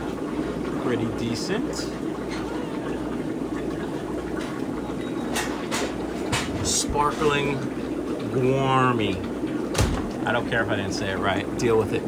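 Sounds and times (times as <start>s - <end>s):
aquarium air pumps humming: 0.0s - 12.0s
filters bubbling: 0.0s - 12.0s.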